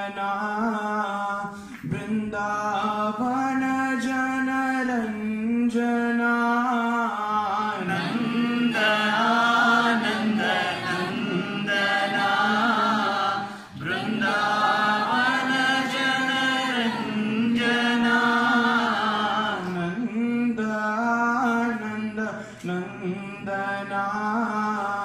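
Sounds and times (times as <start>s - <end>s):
group chanting a hymn: 6.6s - 20.5s, 21.3s - 25.0s.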